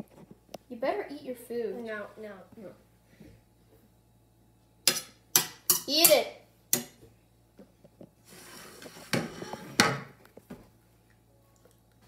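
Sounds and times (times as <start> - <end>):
plate scraping on table: 8.2 - 10.1.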